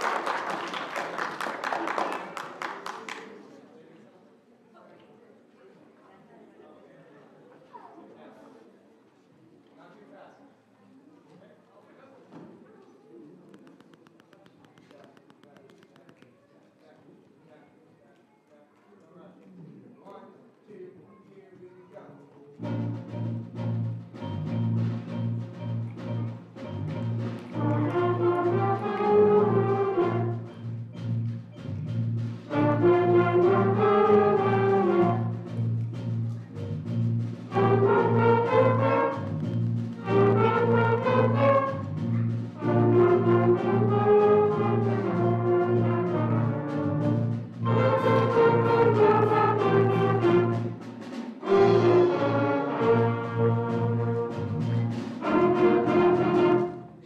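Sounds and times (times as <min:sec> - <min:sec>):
brass melody: 0:22.6 - 0:35.8, 0:36.7 - 0:57.0
band playing jazz shuffle: 0:22.6 - 0:57.0.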